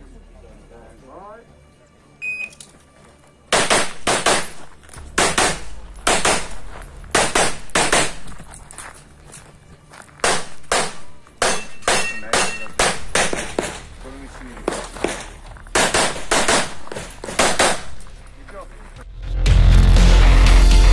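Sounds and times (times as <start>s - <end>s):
pistol shots in quick pairs: 3.5s - 8.3s, 10.2s - 13.9s, 14.7s - 18.0s.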